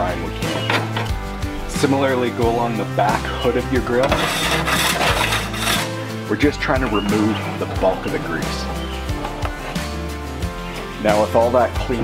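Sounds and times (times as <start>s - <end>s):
music with bass and light beat: 0.0s - 12.0s.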